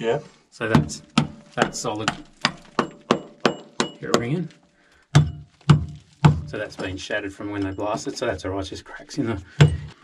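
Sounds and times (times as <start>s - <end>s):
metal tool tapping on rock: 1.2s - 4.4s.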